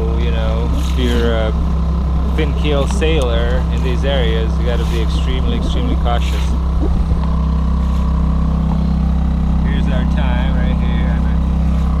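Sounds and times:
outboard motor droning: 0.0s - 12.0s.

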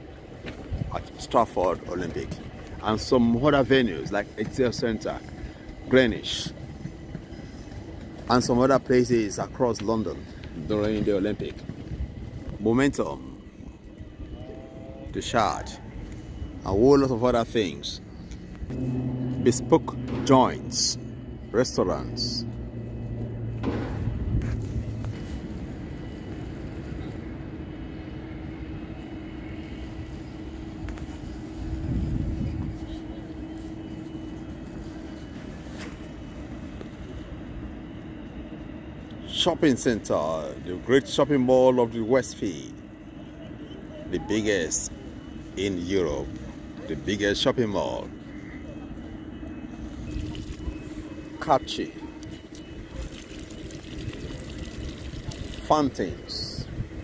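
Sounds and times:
city hum: 0.0s - 57.0s
low rumble: 18.0s - 28.1s
fountain jets splashing: 51.6s - 56.4s.

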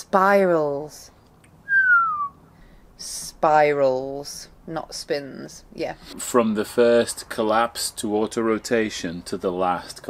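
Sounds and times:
whistled note gliding down: 1.7s - 2.4s.

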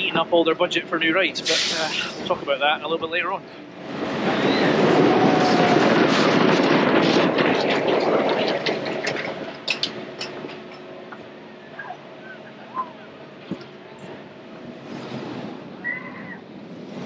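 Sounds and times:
ride train rolling rumble: 0.0s - 17.0s.

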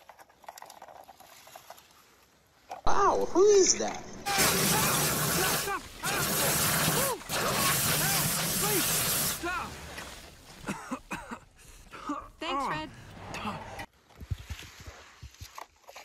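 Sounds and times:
person crying out: 4.2s - 9.7s
water jet spraying a car: 4.3s - 9.5s.

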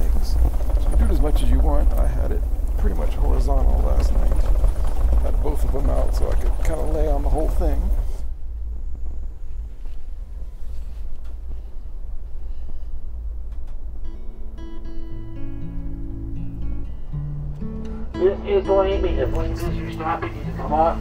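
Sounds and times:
train rumble inside coach: 0.0s - 14.7s, 18.1s - 21.0s
acoustic guitar music: 13.9s - 21.0s.

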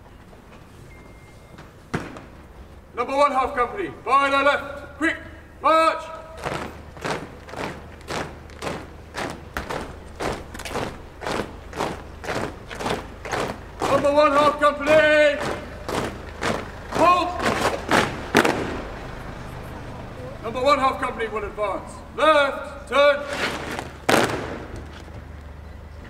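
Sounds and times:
marching boots on road: 0.0s - 26.0s
shouted commands: 2.9s - 18.2s, 20.0s - 23.4s.

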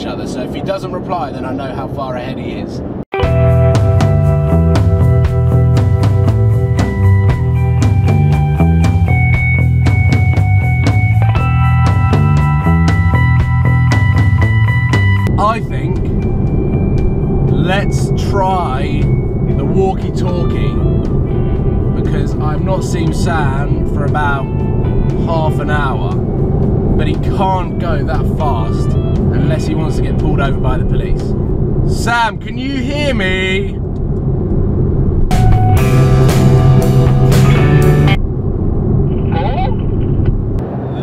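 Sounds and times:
car engine low rumble: 0.0s - 41.0s
music with steady drum beat: 3.2s - 15.3s, 35.3s - 38.2s
road noise inside car: 15.2s - 41.0s.

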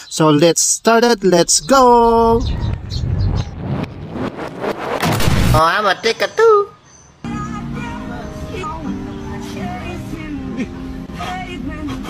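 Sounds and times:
deep rumble: 1.2s - 5.6s
whooshing sweep: 1.4s - 5.6s
sharp hits: 1.4s - 5.8s.

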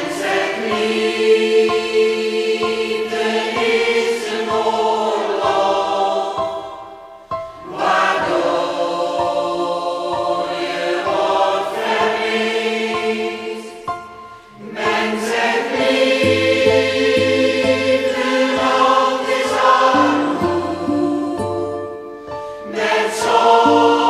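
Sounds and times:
choir singing: 0.0s - 24.0s.

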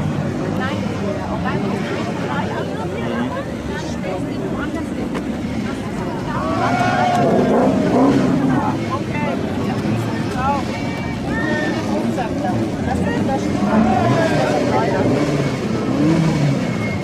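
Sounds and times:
race car engines revving: 0.0s - 17.0s.

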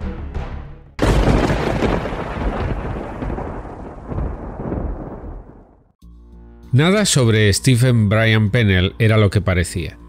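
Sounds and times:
deep rumbling boom: 1.0s - 5.9s.

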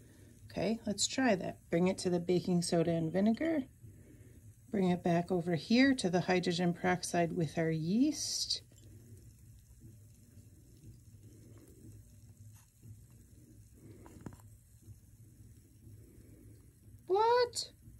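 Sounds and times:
low room hum: 0.0s - 17.9s.

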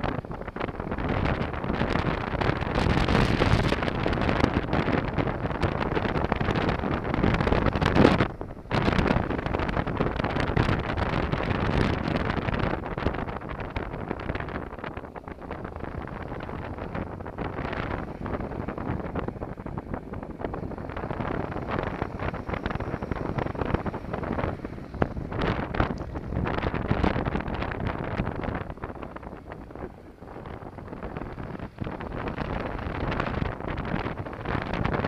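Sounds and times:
motorcycle engine running: 0.0s - 35.0s
wind buffeting microphone: 0.0s - 35.0s.

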